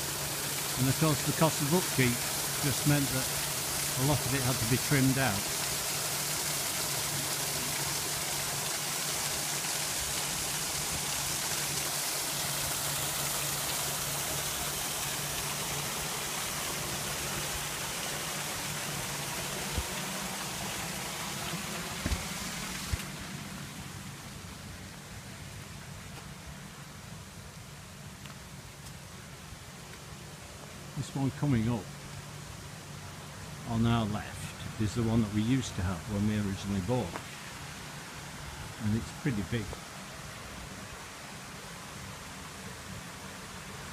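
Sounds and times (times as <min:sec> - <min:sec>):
waterfall splashing into pond: 0:00.0 - 0:25.1, 0:32.2 - 0:43.9.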